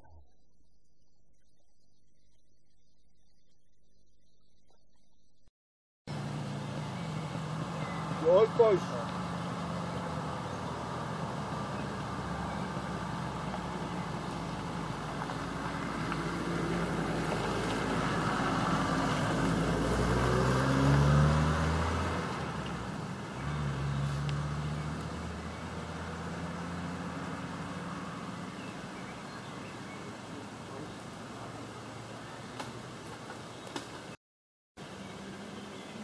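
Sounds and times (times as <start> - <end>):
low engine hum: 6.1 - 33.2
vehicles passing: 6.1 - 34.2.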